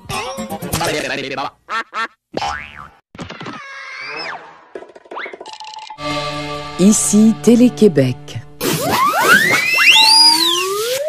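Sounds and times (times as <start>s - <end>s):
cartoon jingle music: 6.0s - 8.6s
falling whistle-like glides: 8.8s - 11.0s.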